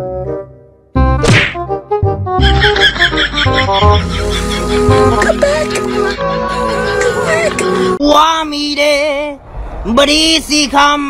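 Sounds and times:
background music with piano notes: 0.0 - 8.0
comic whack with swoosh: 1.2 - 1.7.

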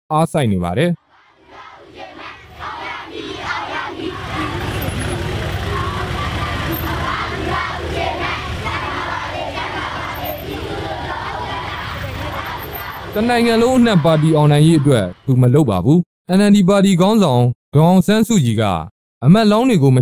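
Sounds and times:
crowd of overlapping voices: 1.0 - 15.5
low vehicle rumble: 1.5 - 15.3.

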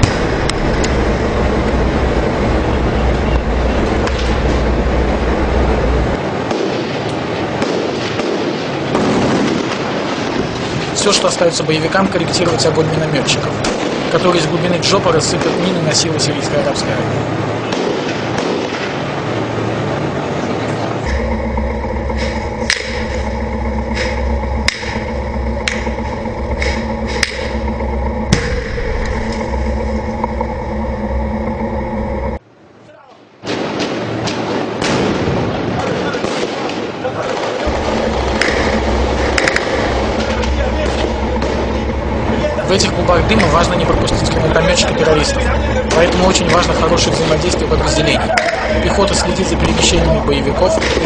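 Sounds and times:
heavy engine running: 0.0 - 7.6, 10.2 - 32.4, 37.6 - 51.0
sharp gunshots: 6.3 - 11.0, 17.6 - 19.1, 33.4 - 40.0
background voices: 21.0 - 32.4, 37.6 - 51.0.

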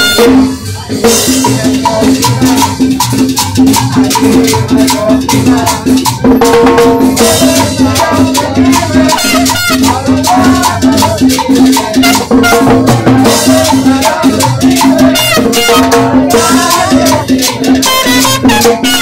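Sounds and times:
saxophone: 0.0 - 0.6, 9.0 - 10.1, 11.9 - 13.4, 15.0 - 16.2, 17.7 - 19.0
percussion beat: 0.0 - 19.0.

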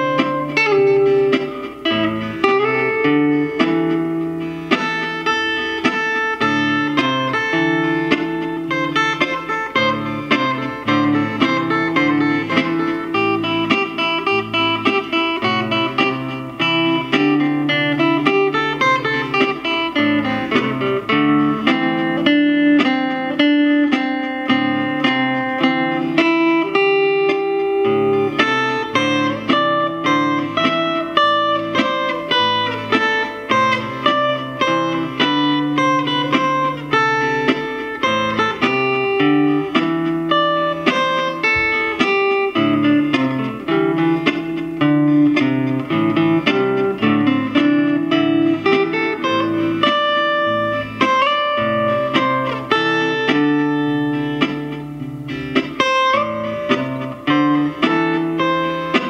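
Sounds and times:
amplified acoustic guitar: 0.0 - 59.0.

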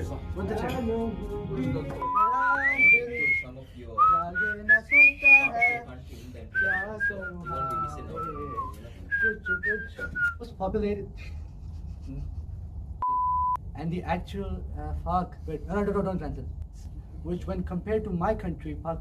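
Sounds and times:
person whistling a tune: 2.0 - 5.9, 6.6 - 10.4.

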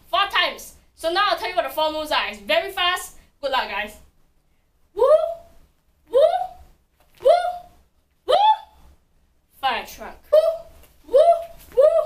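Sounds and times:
woman calling woo: 5.0 - 5.5, 6.1 - 6.6, 7.2 - 8.8, 10.3 - 12.0.

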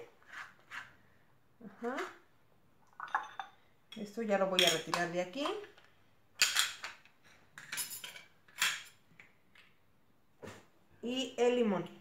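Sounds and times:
bowls and utensils clattering: 2.9 - 5.6, 6.4 - 9.0.

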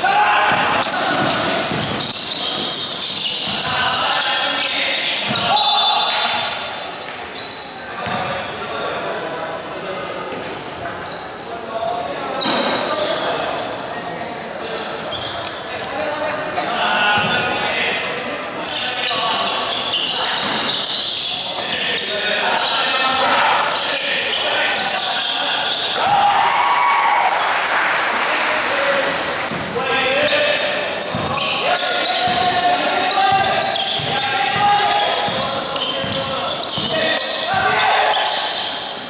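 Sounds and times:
sneakers squeaking: 0.0 - 8.6, 9.8 - 11.6, 12.3 - 26.8, 28.1 - 39.0
basketball bouncing on court: 0.5 - 3.9, 8.0 - 8.3, 29.5 - 30.3, 31.0 - 31.5, 32.2 - 32.6, 33.3 - 37.8
players calling out: 18.6 - 39.0.

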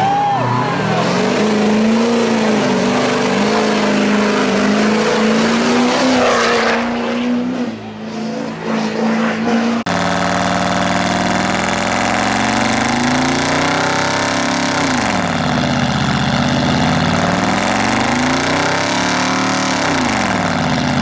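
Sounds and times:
truck engine revving: 0.0 - 21.0.

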